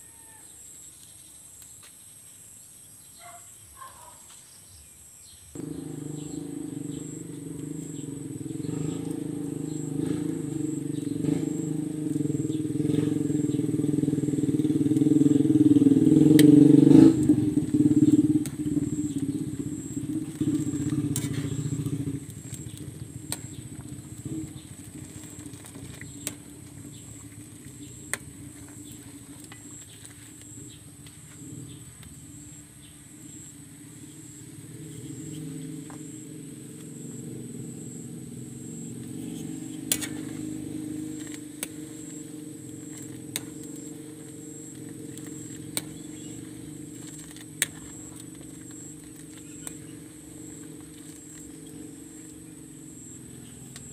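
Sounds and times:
wood fire popping: 0:05.5 - 0:53.9
engine running: 0:05.6 - 0:53.9.

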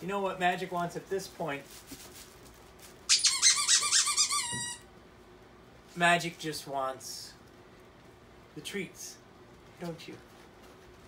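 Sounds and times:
dog toy squeaking: 0:03.1 - 0:04.8.

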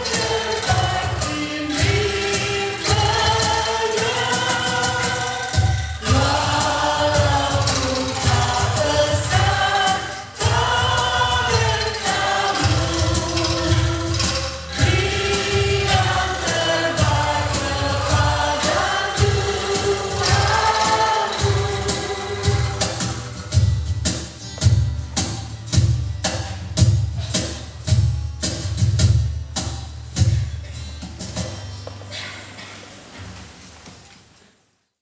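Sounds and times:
choir singing a hymn: 0:00.0 - 0:23.4
angklung ensemble playing: 0:00.0 - 0:23.6.

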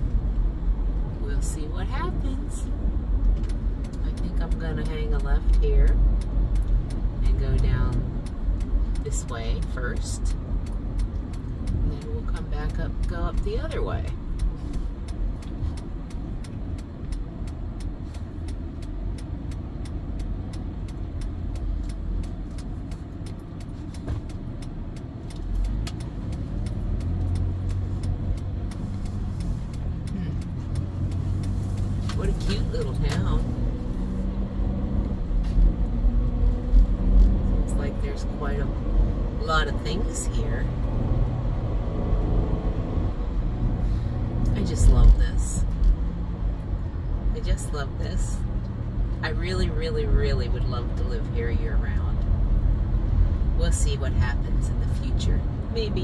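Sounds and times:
van engine and road rumble: 0:00.0 - 0:56.0.

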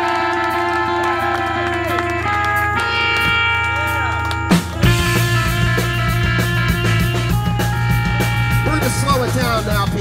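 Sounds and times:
electric guitars sustained notes: 0:00.0 - 0:10.0.

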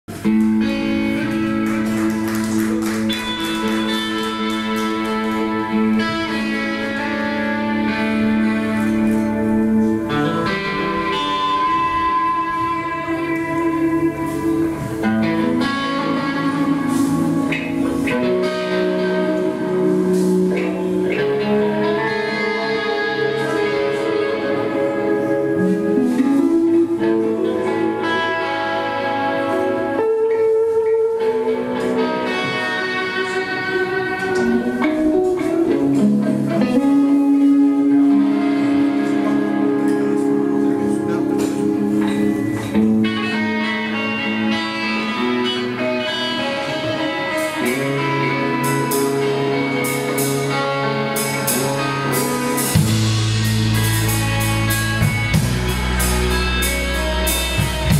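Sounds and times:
electric guitars chords: 0:00.1 - 0:57.9
rock band playing instrumental: 0:00.1 - 0:57.9
drums and cymbals: 0:51.2 - 0:57.9.

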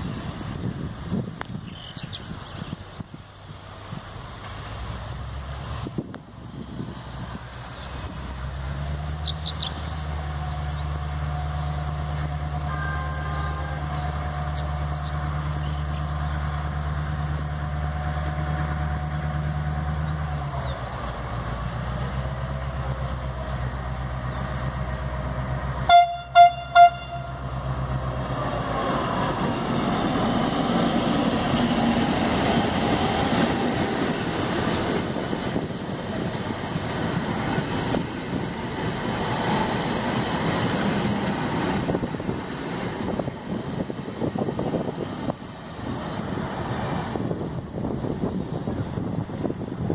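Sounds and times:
diesel locomotive engine drone: 0:00.0 - 0:49.9
train horn blasts: 0:25.9 - 0:27.5
train wheels on rails: 0:27.3 - 0:49.9.

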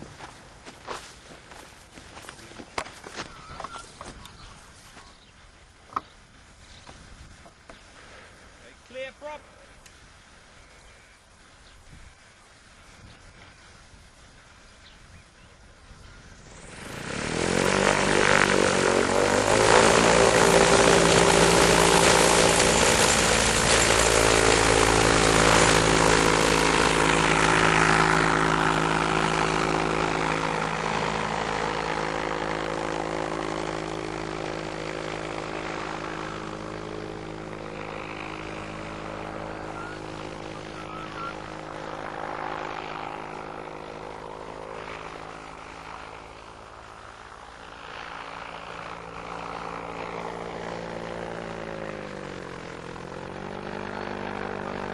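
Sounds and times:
electric motor and propeller: 0:09.8 - 0:54.9.

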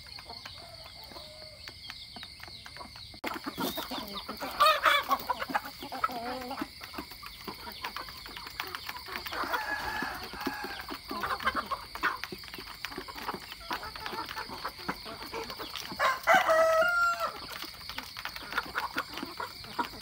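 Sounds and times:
hens and roosters clucking: 0:00.0 - 0:20.0.

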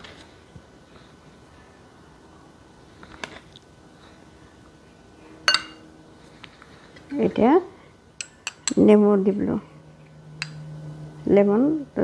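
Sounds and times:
metal spoon clinking on bowl: 0:05.5 - 0:05.8, 0:08.2 - 0:08.9.

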